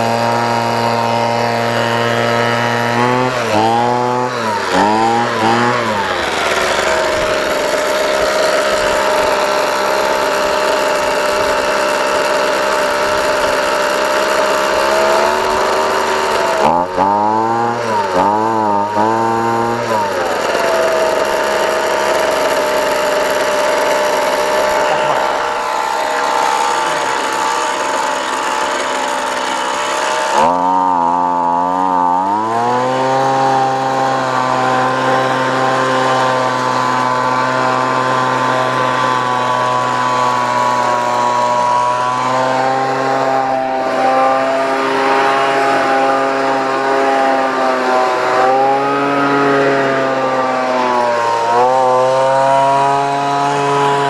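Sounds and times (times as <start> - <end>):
leaf blower engine revving: 0.0 - 54.0.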